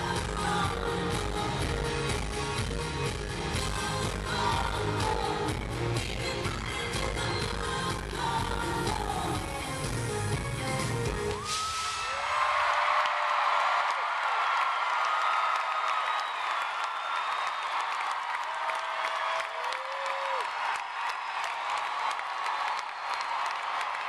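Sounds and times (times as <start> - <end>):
high-pitched screams: 11.3 - 13.4
crowd clapping: 11.3 - 24.0.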